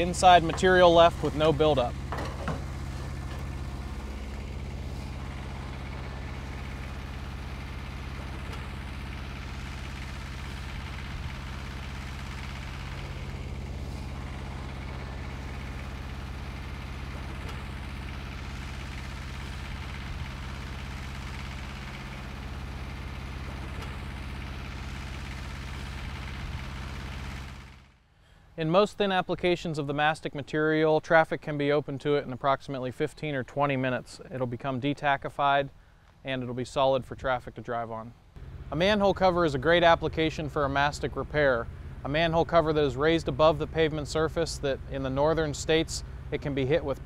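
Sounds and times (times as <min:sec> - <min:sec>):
engine idling: 0:00.0 - 0:28.6, 0:38.2 - 0:47.0.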